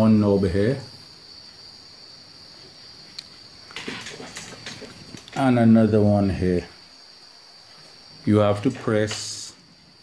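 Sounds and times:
crickets trilling: 0:00.0 - 0:10.0
rustling and light knocks: 0:02.6 - 0:05.4.

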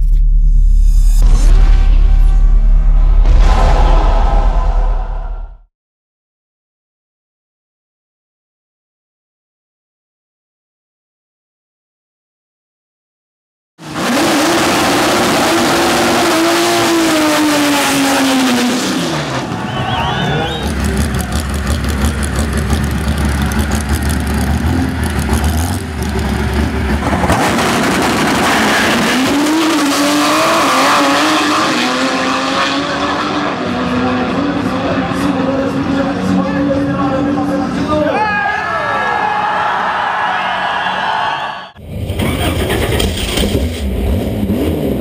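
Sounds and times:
drag car engine revving: 0:13.8 - 0:38.0, 0:41.8 - 0:45.0.

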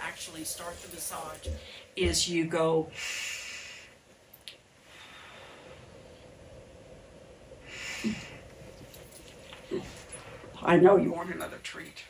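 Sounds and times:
woman breathing out slowly: 0:07.6 - 0:08.8.

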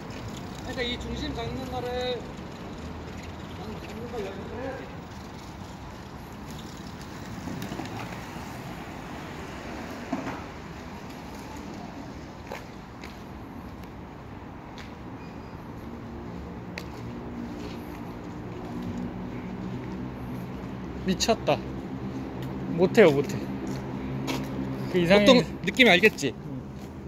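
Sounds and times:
skateboard rolling on asphalt: 0:00.0 - 0:13.2
street noise: 0:00.0 - 0:27.0.

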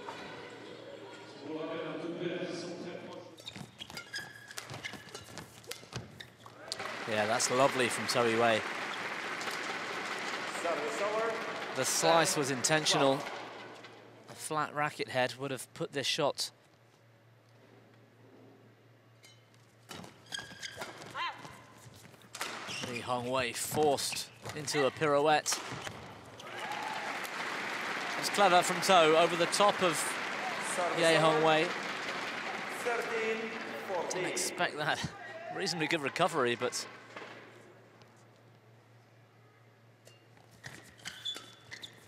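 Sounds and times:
shoes squeaking on court floor: 0:03.2 - 0:06.8, 0:19.2 - 0:25.0, 0:40.1 - 0:42.0.

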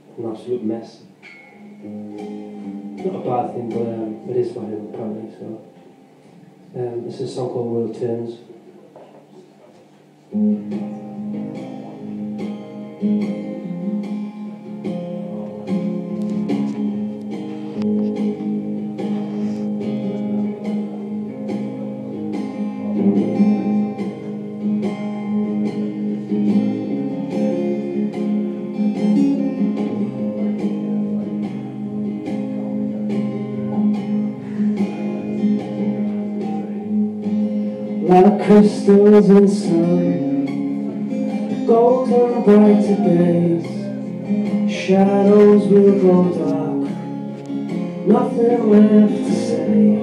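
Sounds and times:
acoustic guitar strumming chords: 0:00.0 - 0:08.3, 0:10.1 - 0:50.0.

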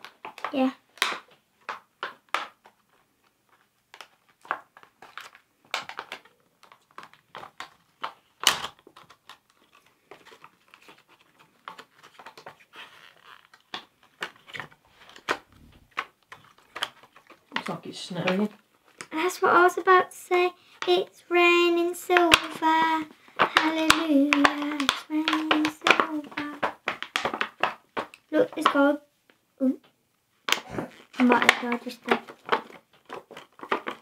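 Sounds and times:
plastic packet crinkling: 0:00.0 - 0:29.0, 0:30.5 - 0:34.0.

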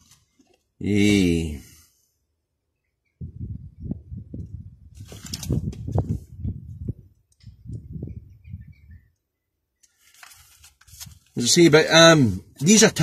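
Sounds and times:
microphone handling thumps: 0:03.2 - 0:08.2
brief rustle: 0:04.9 - 0:06.2, 0:09.8 - 0:11.4.

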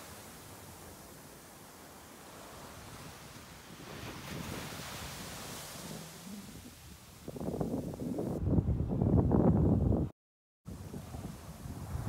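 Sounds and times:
wind buffeting microphone: 0:02.3 - 0:10.1, 0:10.7 - 0:12.0.

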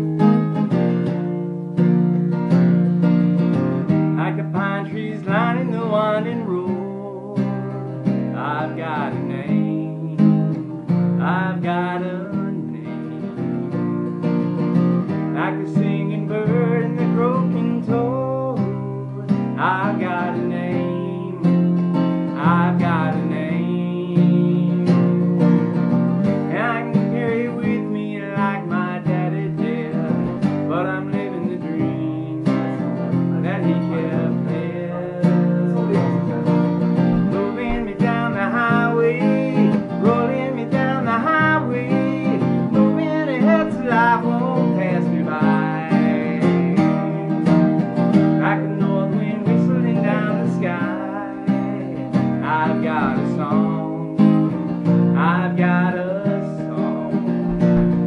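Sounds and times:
acoustic guitar strumming: 0:00.0 - 0:58.0
man singing: 0:03.4 - 0:58.0.

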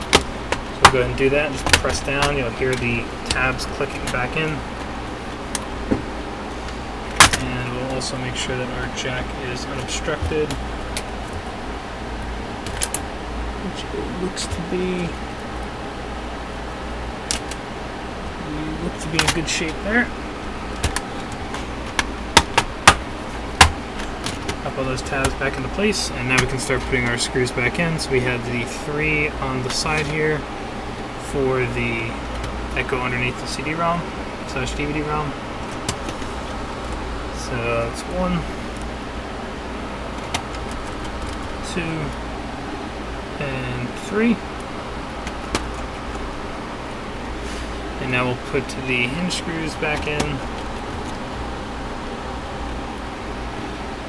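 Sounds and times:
room hiss and low hum: 0:00.0 - 0:54.0.

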